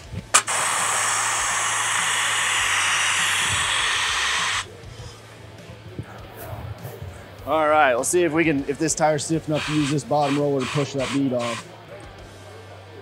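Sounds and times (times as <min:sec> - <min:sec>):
compressed air hissing: 0:00.0 - 0:05.3, 0:09.4 - 0:11.7
valve click: 0:00.2 - 0:04.7.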